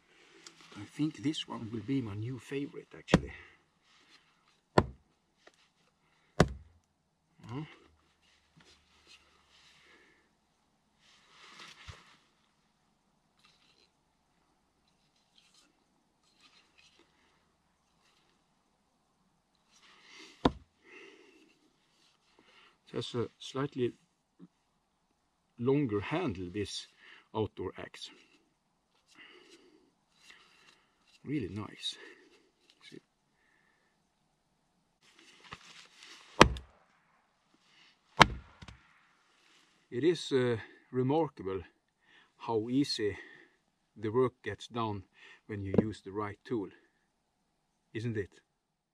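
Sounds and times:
rustling and shuffling: 0.0 - 6.8, 7.8 - 10.0, 10.9 - 12.7, 21.4 - 23.5, 35.0 - 36.7, 37.5 - 40.0
axe knocking against wooden block: 4.8 - 5.0, 6.4 - 6.7, 20.4 - 20.6, 36.4 - 36.7, 38.2 - 38.8
soft thump: 4.8 - 5.0, 6.4 - 6.6, 20.4 - 20.6
shuffling and rustling: 11.0 - 12.4, 35.0 - 36.6.

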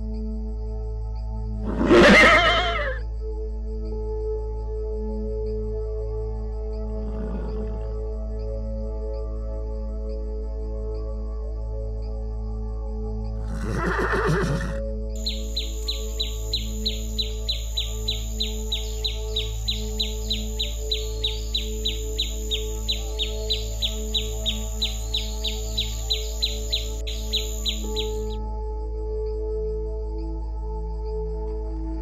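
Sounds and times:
soft background music: 0.0 - 32.0
horse whinnying: 1.6 - 3.0, 7.0 - 8.0, 13.4 - 18.8
hummingbird chirping: 15.2 - 28.4.

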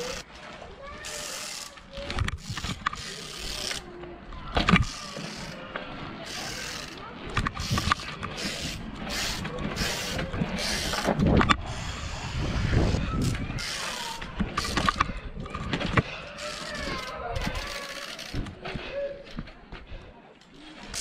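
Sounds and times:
wind rushing on microphone: 10.2 - 13.6.

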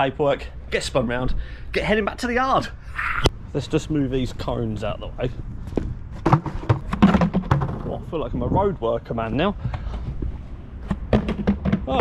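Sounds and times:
plastic cone clattering on tarmac: 6.1 - 8.1, 9.6 - 12.0.

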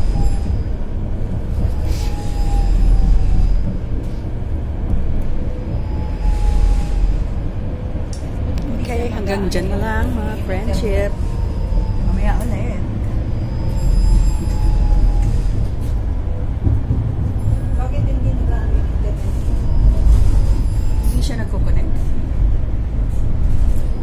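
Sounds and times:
bus cabin rumble: 0.0 - 24.0.

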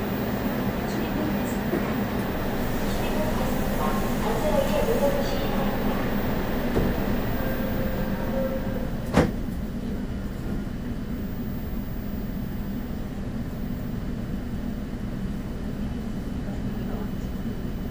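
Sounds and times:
subway train rumble: 0.0 - 17.9.

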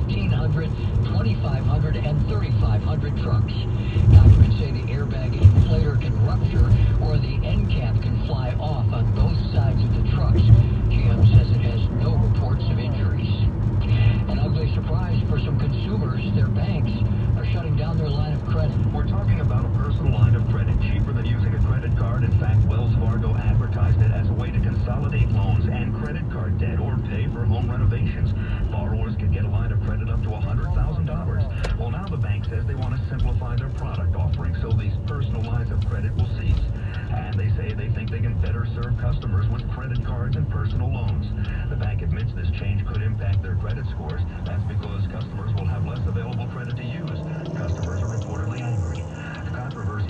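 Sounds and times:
radio voice through speakers: 0.0 - 50.0
road and engine rumble: 0.0 - 50.0.

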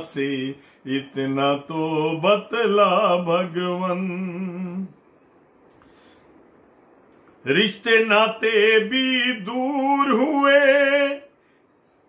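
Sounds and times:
man singing: 0.0 - 5.0, 7.4 - 11.4
faint room noise: 0.0 - 12.0.

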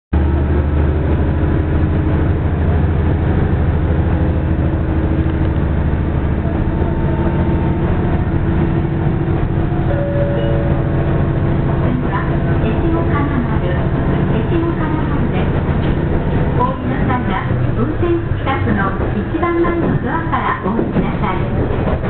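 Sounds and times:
diesel engine rumbling: 0.2 - 22.0.

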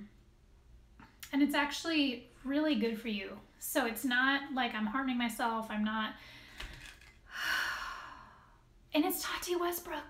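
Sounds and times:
woman sighing: 7.3 - 8.5.

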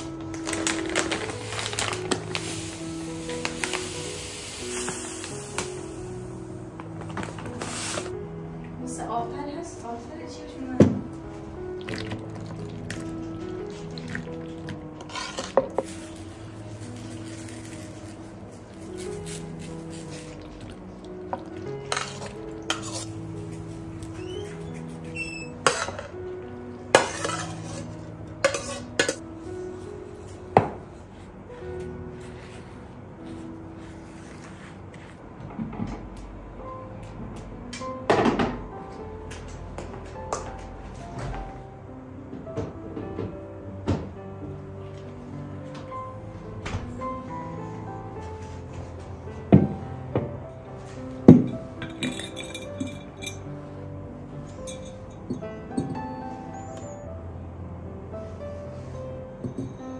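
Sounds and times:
background music: 0.0 - 59.9
metal spoon clinking on dishes: 28.4 - 29.2, 51.8 - 53.4, 54.6 - 55.9.

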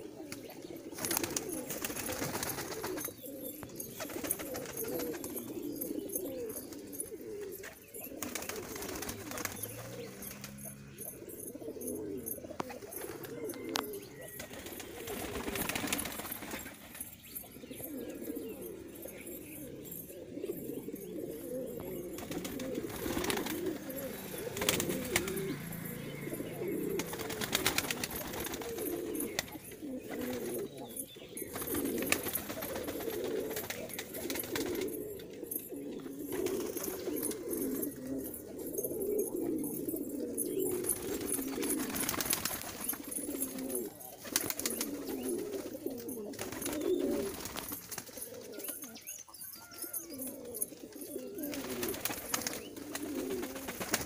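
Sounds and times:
pigeons cooing: 0.0 - 54.0.

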